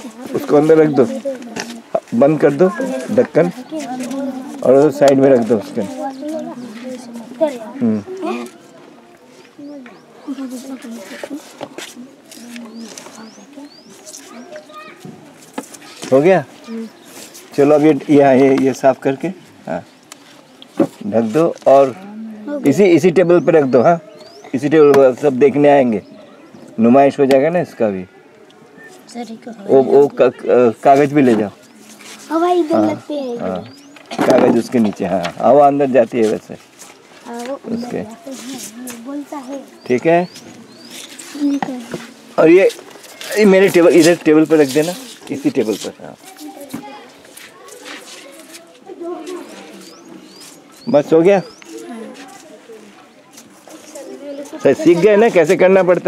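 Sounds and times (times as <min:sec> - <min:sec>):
small bird chirping: 0:37.4 - 0:42.0
birds whistling: 0:39.7 - 0:41.9, 0:49.8 - 0:51.8.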